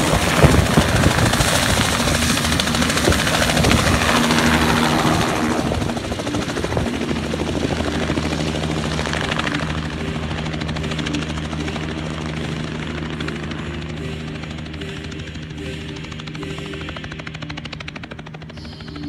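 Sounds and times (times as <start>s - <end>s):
helicopter rotor beat: 0.0s - 19.0s.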